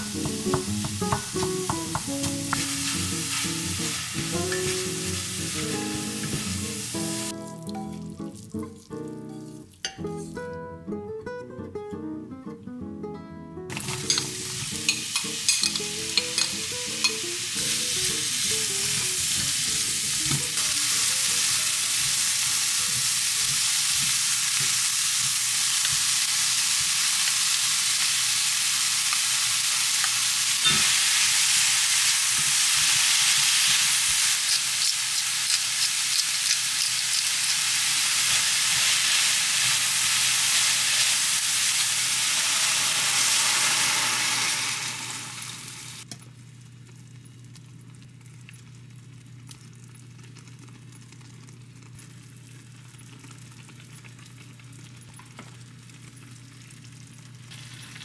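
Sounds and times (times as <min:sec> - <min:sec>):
food sizzling in oil: 0:00.0 - 0:10.2, 0:13.7 - 0:46.1, 0:55.6 - 0:58.0.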